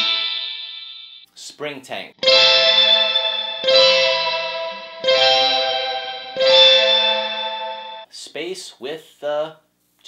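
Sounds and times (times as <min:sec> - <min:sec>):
electric guitar chords with spring reverb: 0:02.2 - 0:08.0.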